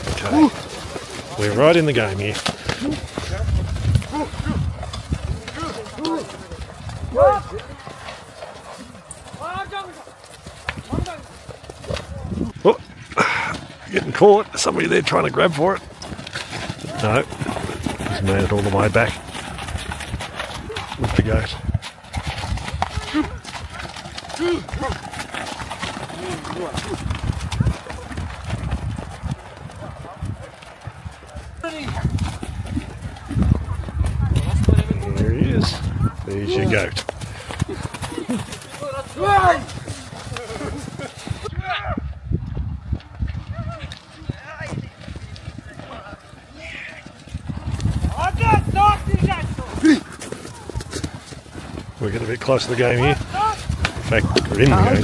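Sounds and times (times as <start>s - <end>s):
men calling out: 0.0s - 4.7s, 5.4s - 8.0s, 37.6s - 42.0s
hooves thudding on snow and mud: 0.0s - 55.0s.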